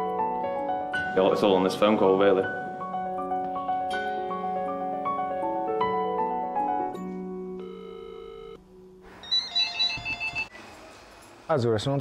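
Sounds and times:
piano music: 0.0 - 10.5
cordless phone ringing beeps: 7.6 - 8.6, 9.2 - 10.6.

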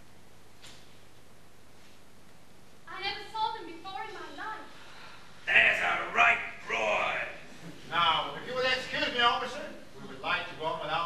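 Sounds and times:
faint hall hiss: 0.0 - 11.0.

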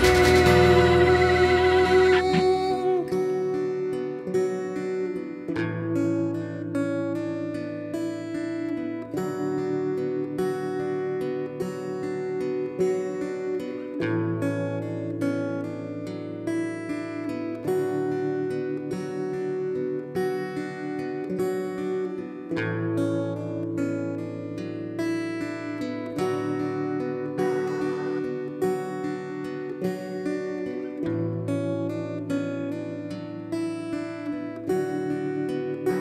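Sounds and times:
acoustic guitar playing: 0.0 - 36.0.

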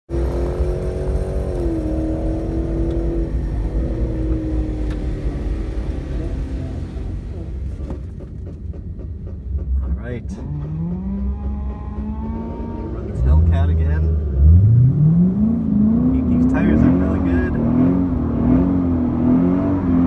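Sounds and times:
engines idling rumble: 0.2 - 14.4.

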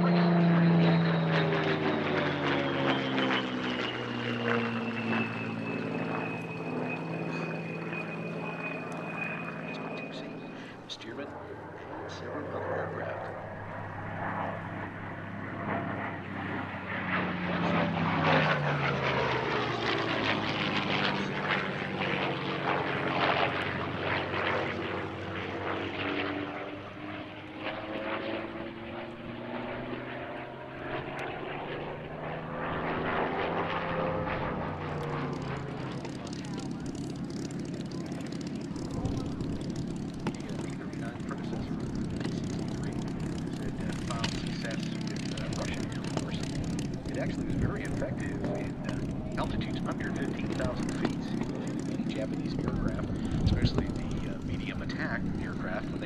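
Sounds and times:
propeller plane engine droning: 0.0 - 56.0.

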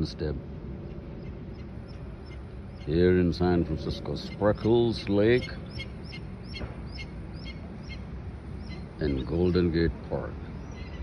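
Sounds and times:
low outdoor rumble: 0.0 - 11.0
bird chirping: 0.8 - 11.0.

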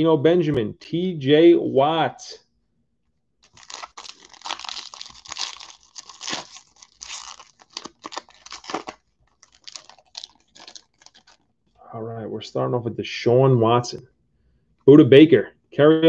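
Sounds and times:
wrapper tearing and crinkling: 3.4 - 11.5.

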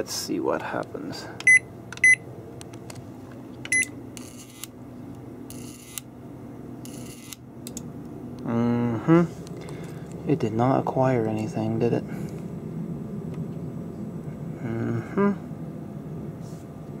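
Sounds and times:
steady low hum: 0.0 - 17.0
microwave keypad beeping: 1.4 - 2.2, 3.7 - 3.9.

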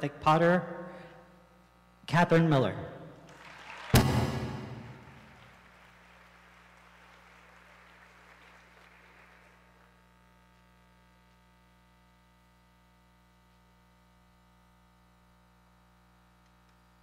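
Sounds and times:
audience applause: 3.3 - 9.9.

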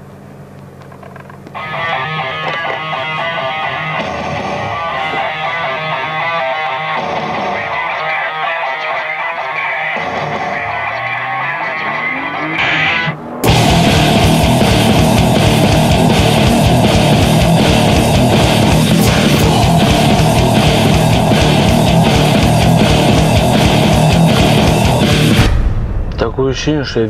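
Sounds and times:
car engine idling: 0.0 - 27.0
rock music with guitar: 1.5 - 26.2.

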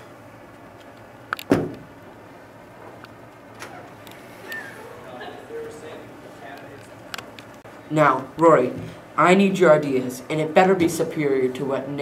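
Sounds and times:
low room noise: 0.0 - 12.0
loud sharp thump: 1.5 - 1.9.

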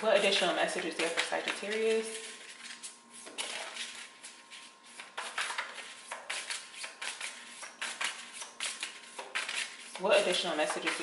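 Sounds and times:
cards being shuffled: 0.2 - 11.0.

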